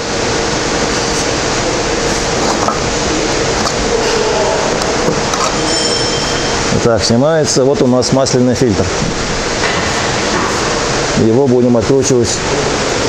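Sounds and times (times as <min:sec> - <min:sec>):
steady rushing noise: 0:00.0 - 0:13.0.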